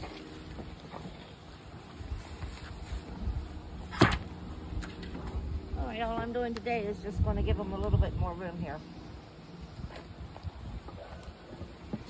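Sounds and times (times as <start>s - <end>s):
wind buffeting microphone: 2.0s - 12.0s.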